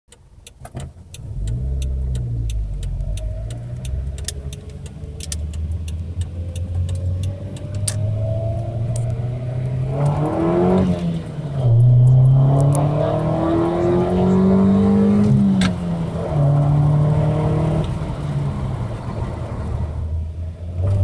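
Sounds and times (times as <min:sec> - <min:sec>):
sharp clicks and rattles: 0:00.1 - 0:10.4
car engine revving: 0:00.7 - 0:21.0.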